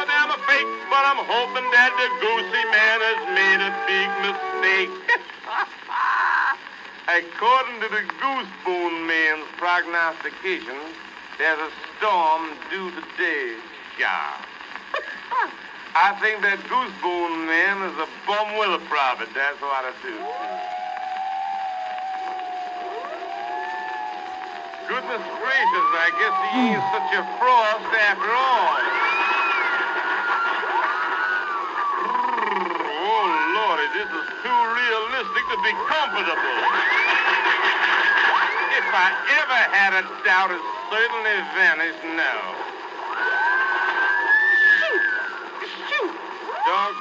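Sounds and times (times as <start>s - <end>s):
record surface hiss: 0.0s - 47.0s.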